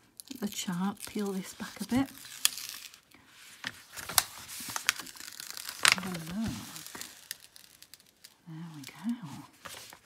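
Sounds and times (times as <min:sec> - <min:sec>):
film peeling with crinkling: 0:00.0 - 0:10.0.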